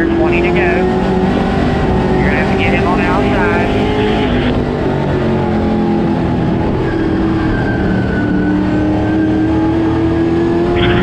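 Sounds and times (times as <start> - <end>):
race car engine: 0.0 - 11.0.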